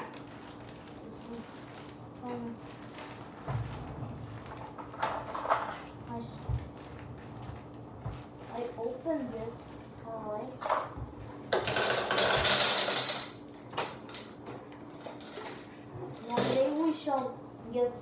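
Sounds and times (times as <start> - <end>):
plastic bag crinkling: 0.0 - 10.4
gumballs rattling into plastic globe: 11.5 - 13.4.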